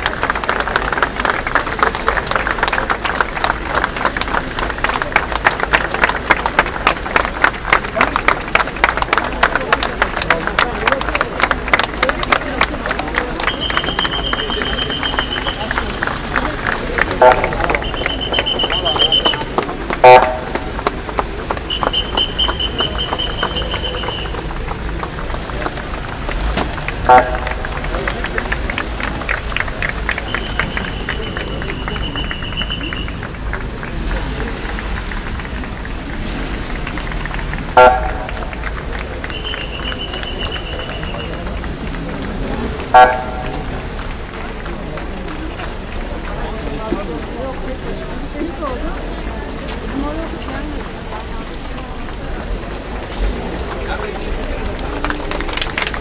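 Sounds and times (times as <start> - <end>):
crowd chatter: 0.0 - 56.0
high whistle blasts: 13.4 - 15.7, 17.7 - 19.5, 21.7 - 24.4, 30.3 - 33.1, 39.3 - 41.3
car horn toots: 13.4 - 16.2, 17.0 - 20.8, 21.6 - 24.5, 27.0 - 27.9, 30.0 - 33.3, 37.6 - 38.6, 39.2 - 41.5, 42.8 - 44.0.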